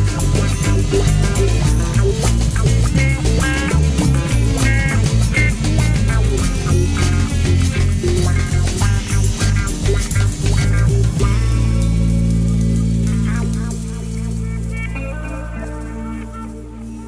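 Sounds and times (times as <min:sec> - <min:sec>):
rock band playing: 0:00.0 - 0:17.0.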